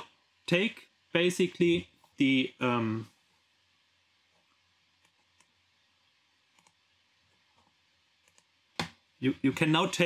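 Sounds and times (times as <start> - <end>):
man speaking: 0.0 - 3.2, 9.2 - 10.0
computer mouse clicks: 6.5 - 6.8, 7.6 - 9.0.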